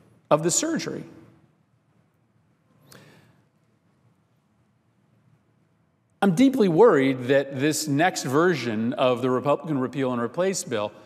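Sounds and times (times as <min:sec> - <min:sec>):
man's speech echoing: 0:00.0 - 0:01.5, 0:06.2 - 0:11.0.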